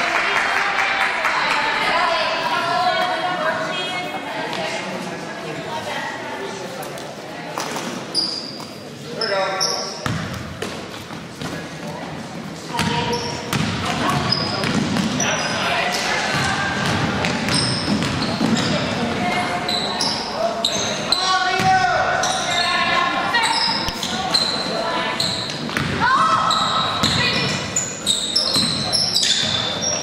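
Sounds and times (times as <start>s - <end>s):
sneakers squeaking: 7.6s - 11.7s, 12.4s - 30.0s
basketball bouncing on wooden floor: 16.3s - 18.7s.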